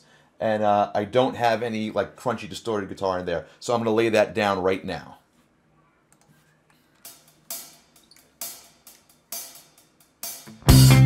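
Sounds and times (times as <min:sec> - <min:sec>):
drums: 0:07.0 - 0:11.0
electric guitar: 0:10.4 - 0:11.0.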